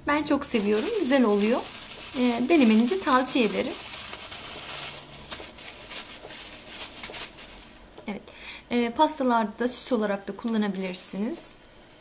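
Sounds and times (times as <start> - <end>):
woman speaking: 0.0 - 3.8, 8.0 - 11.6
dried fruit on metal tray: 0.1 - 7.9
plastic bag rustling: 0.2 - 7.9, 10.5 - 11.4.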